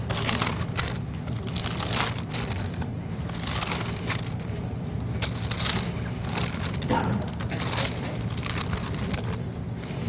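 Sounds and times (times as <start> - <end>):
low steady hum: 0.0 - 10.0
pages rustling and turning: 0.0 - 10.0.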